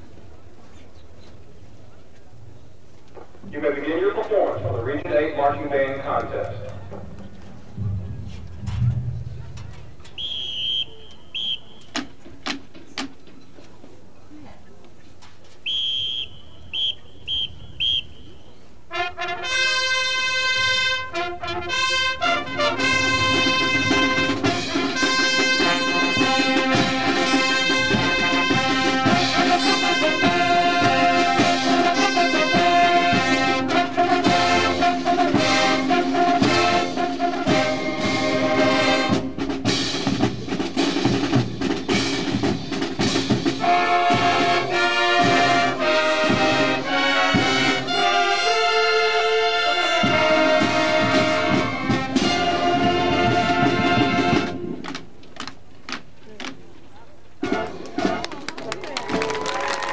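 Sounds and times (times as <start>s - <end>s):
marching band playing: 3.5s - 13.2s, 15.8s - 56.5s, 57.4s - 59.9s
brass chords: 3.6s - 11.8s, 16.8s - 40.2s, 40.8s - 54.8s, 57.4s - 58.3s
drum strikes: 6.8s - 10.4s, 22.5s - 34.6s, 36.2s - 47.8s.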